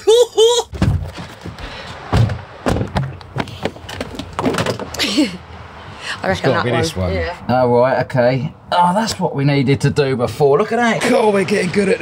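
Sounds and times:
knocks and thuds: 0.7s - 5.0s
vehicle door opening and shutting: 0.7s - 5.1s.

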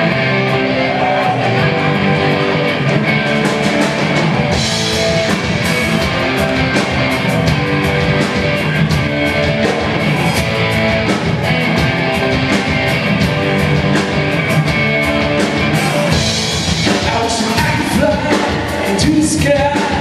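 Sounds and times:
bass guitar: 0.0s - 20.0s
drum kit beat: 0.0s - 20.0s
electric guitars: 0.0s - 20.0s.

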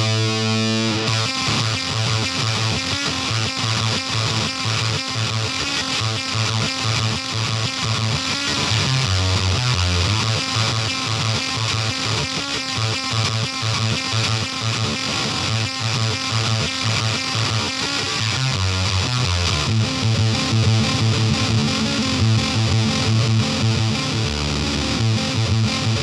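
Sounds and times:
fuzzy electric guitar riff: 0.0s - 26.0s.

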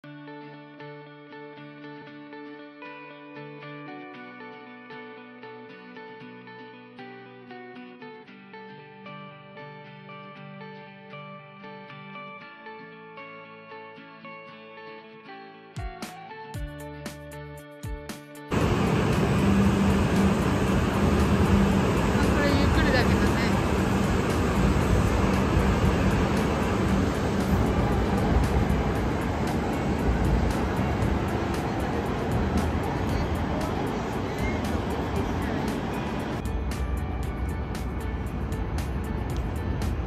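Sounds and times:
train rushing past: 18.5s - 40.0s.

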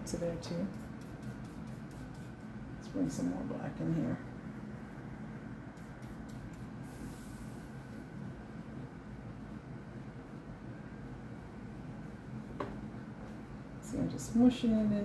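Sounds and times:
low room hum: 0.0s - 15.0s
paintbrush strokes on cardboard: 0.7s - 2.5s, 5.8s - 7.7s.

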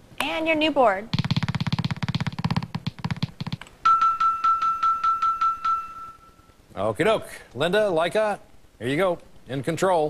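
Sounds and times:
fast run of beats: 1.1s - 3.7s
bright chiming pings: 3.8s - 6.6s
held high tone: 3.8s - 6.6s.

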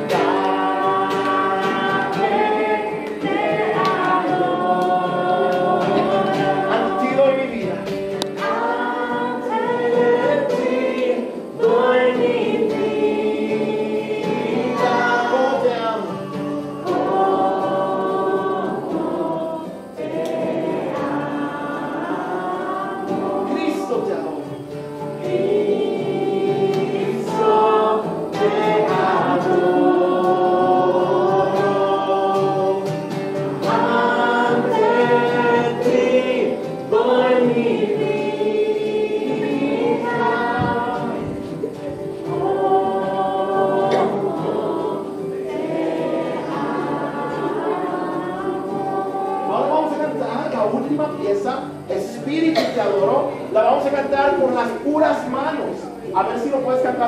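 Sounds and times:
children singing in unison: 0.0s - 50.9s.

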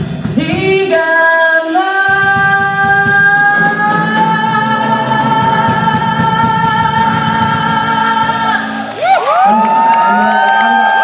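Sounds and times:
male vocal trio and band: 0.2s - 9.0s
audience whooping and cheering: 8.6s - 11.0s
audience clapping: 9.0s - 11.0s.

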